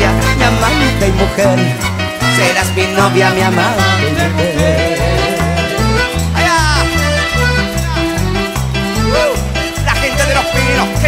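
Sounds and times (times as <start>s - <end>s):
band playing live: 0.0s - 11.0s
steady bass line: 0.0s - 11.0s.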